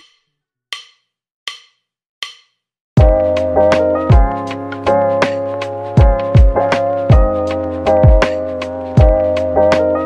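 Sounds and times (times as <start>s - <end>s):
backing music beat: 3.0s - 10.0s.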